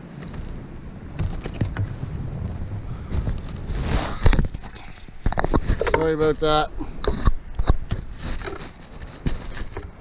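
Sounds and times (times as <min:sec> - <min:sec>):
rustling: 0:00.0 - 0:10.0
wind noise on microphone: 0:00.0 - 0:10.0.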